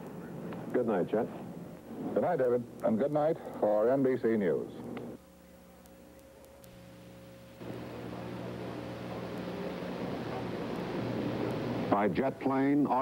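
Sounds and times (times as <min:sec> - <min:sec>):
electrical hum: 0:00.0 - 0:13.0
recording hiss: 0:00.0 - 0:13.0.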